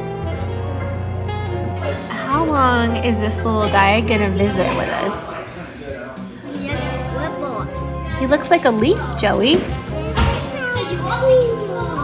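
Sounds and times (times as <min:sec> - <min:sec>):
background music: 0:00.0 - 0:12.0
children talking and exclaiming: 0:00.8 - 0:12.0.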